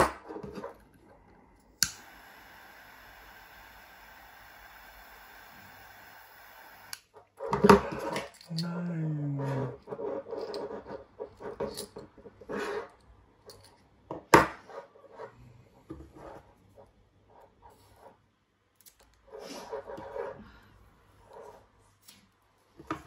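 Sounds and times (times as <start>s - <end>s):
butane torch lighter hissing: 1.8s - 7.0s
low falling hum from voice: 8.5s - 9.8s.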